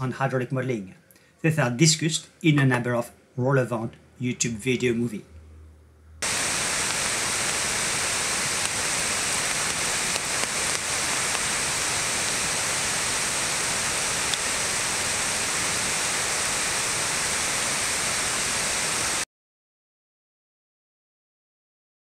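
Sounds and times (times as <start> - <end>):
water rushing over dam spillway: 6.2 - 19.2.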